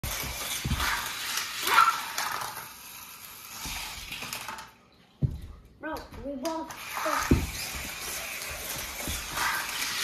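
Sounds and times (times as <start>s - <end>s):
toy cars hissing on track: 0.0s - 4.7s, 6.7s - 10.0s.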